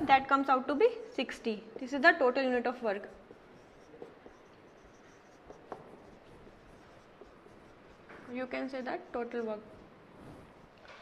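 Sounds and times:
marker rubbing on whiteboard: 0.3 - 11.0.

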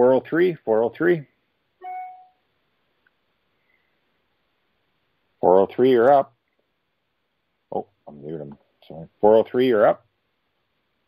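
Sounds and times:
faint line hiss: 1.4 - 9.2.

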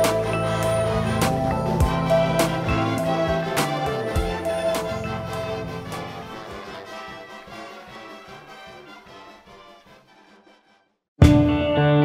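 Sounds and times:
brass band playing: 0.0 - 10.6.

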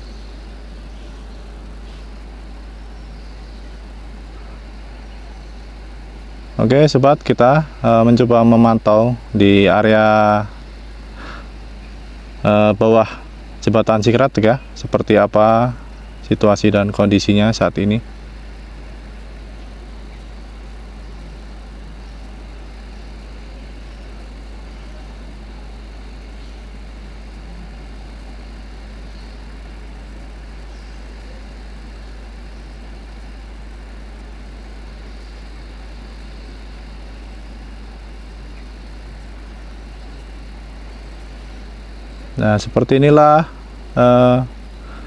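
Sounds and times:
even hiss: 0.0 - 45.0
steady low hum: 0.0 - 45.0.

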